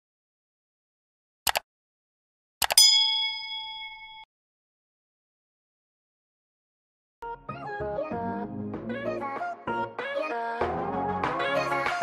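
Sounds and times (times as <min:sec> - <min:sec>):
notification bell ding: 0:02.7 - 0:04.3.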